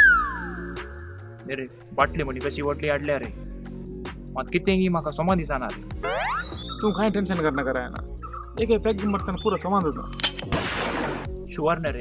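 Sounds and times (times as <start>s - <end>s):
men talking: 1.4s - 3.4s, 4.3s - 5.9s, 6.7s - 10.3s, 11.5s - 12.0s.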